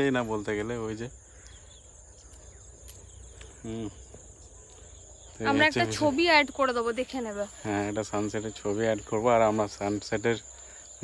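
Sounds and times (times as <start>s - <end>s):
insects chirring: 0.0s - 11.0s.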